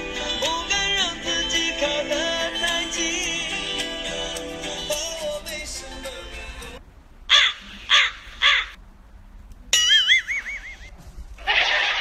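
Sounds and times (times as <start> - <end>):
crow cawing: 7.3 - 8.8.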